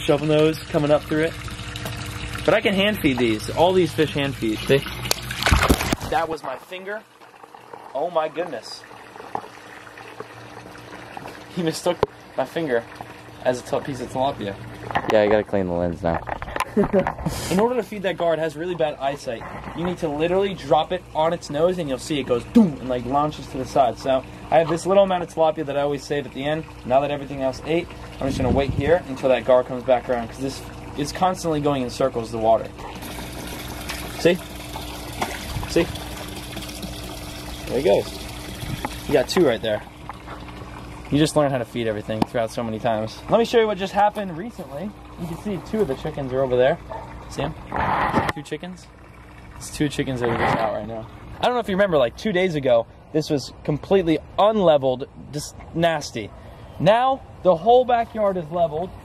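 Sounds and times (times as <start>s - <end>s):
pump humming: 0.0s - 59.0s
water trickling and pouring: 0.0s - 59.0s.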